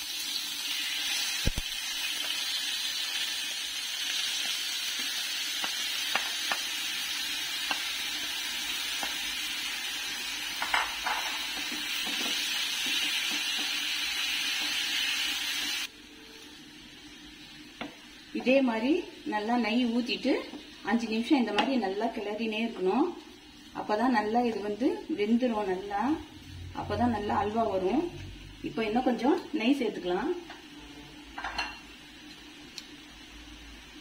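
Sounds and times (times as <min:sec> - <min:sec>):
beetroot sizzling in a pan: 0:00.0 - 0:34.0.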